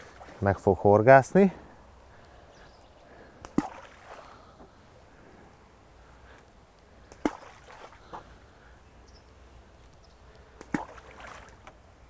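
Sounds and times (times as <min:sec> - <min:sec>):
bait plopping into water: 0:03.4 - 0:04.2, 0:07.1 - 0:08.0, 0:10.6 - 0:11.8.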